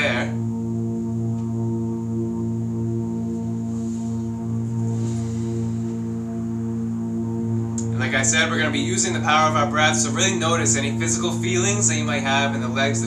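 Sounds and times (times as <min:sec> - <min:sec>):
steady droning tone: 0:00.0 - 0:13.0.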